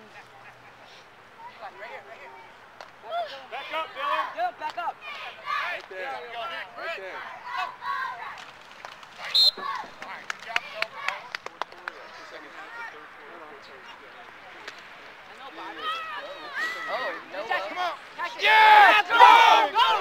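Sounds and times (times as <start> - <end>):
voices calling out: 0.0 - 20.0
referee's whistle blast: 9.3 - 9.6.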